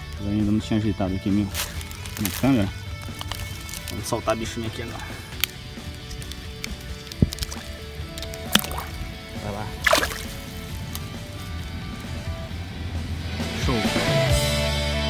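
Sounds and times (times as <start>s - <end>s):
background music: 0.0s - 15.0s
water splashing and dripping: 7.0s - 10.7s.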